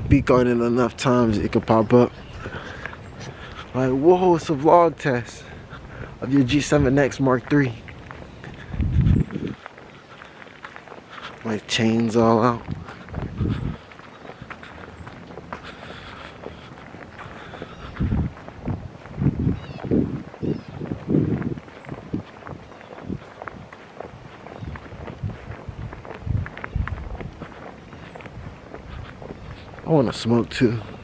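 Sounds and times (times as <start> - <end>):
footsteps: 0.0 - 31.0.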